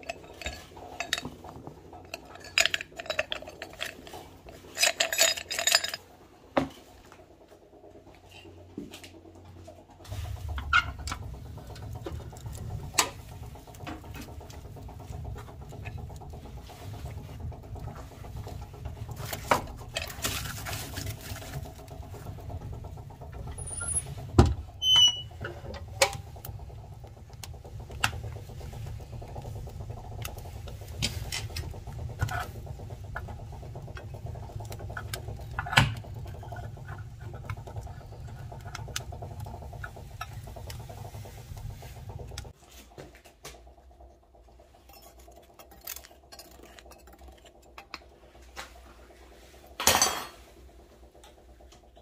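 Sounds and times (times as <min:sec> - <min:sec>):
low rumble of firebox: 0:00.0 - 0:52.0
wood fire crackling and popping: 0:06.9 - 0:49.0.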